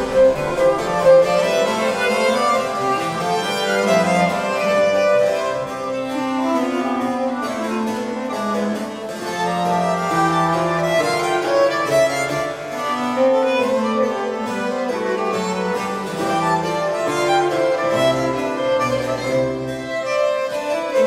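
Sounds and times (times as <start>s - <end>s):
bowed strings: 0.0s - 21.0s
harpsichord: 0.0s - 21.0s.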